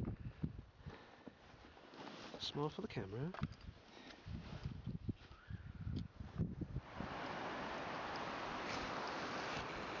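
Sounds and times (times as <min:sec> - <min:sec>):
wind buffeting microphone: 0:00.0 - 0:00.8, 0:03.4 - 0:10.0.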